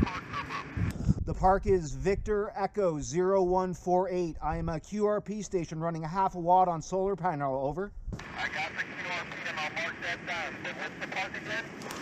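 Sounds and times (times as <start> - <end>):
weak voice over radio: 0.0 - 0.7, 8.2 - 12.0
radio band noise hiss: 0.0 - 0.9, 8.2 - 12.0.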